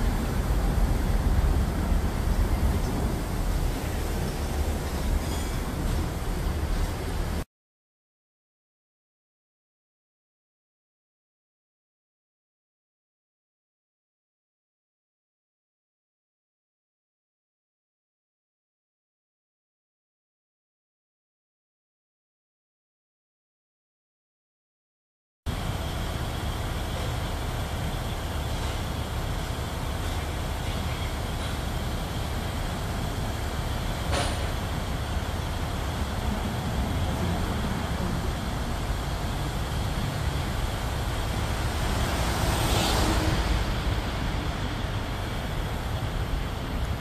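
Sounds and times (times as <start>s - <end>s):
construction machinery rumble: 0.0s - 7.4s, 25.5s - 47.0s
road traffic: 0.0s - 7.5s, 25.5s - 47.0s.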